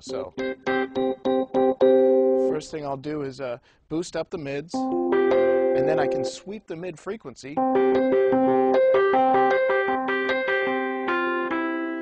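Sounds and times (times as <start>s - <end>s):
electric piano repeated notes: 0.0s - 2.7s, 4.7s - 6.5s, 7.6s - 12.0s.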